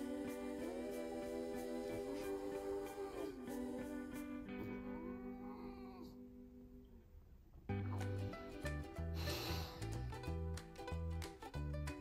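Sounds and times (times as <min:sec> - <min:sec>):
background music with held notes: 0:00.0 - 0:05.7, 0:07.7 - 0:12.0.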